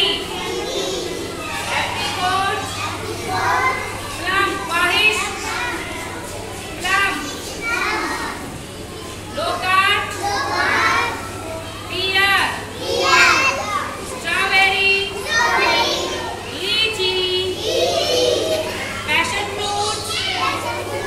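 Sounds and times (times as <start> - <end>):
steady low hum: 0.0 - 21.0
young children chattering: 0.0 - 21.0.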